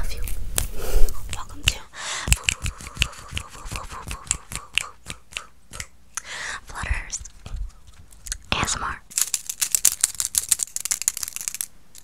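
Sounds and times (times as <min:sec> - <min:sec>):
fingernail clicks: 0:01.3 - 0:06.3.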